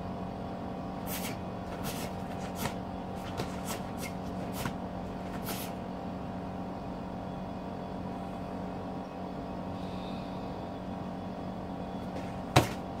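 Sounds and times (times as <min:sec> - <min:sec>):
mechanical hum: 0:00.0 - 0:13.0.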